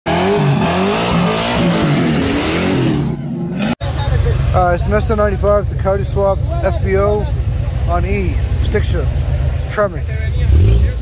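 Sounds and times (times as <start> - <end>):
car engine revving hard: 0.1 - 3.8, 10.4 - 11.0.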